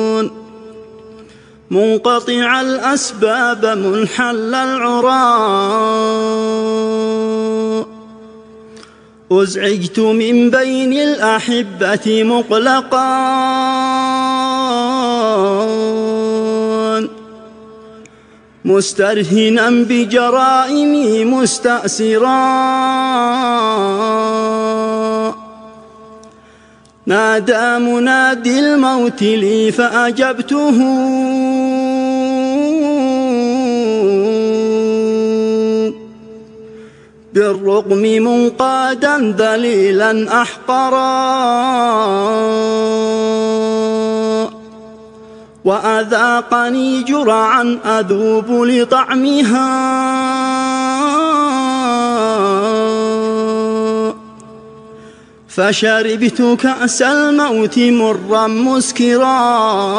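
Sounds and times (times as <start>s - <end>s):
man chanting: 0.0s - 8.5s, 9.2s - 18.0s, 18.6s - 26.2s, 27.0s - 36.6s, 37.3s - 59.9s.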